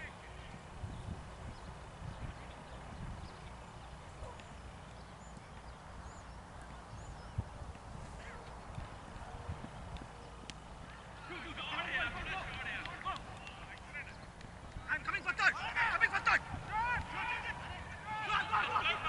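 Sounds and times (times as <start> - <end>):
wind rumble on microphone: 0.0 - 11.1.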